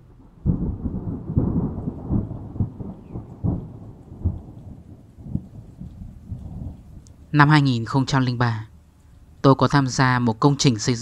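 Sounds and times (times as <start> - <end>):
rolling thunder: 0.0 - 7.4
rain: 0.0 - 11.0
loud thunder cracks: 0.1 - 7.0.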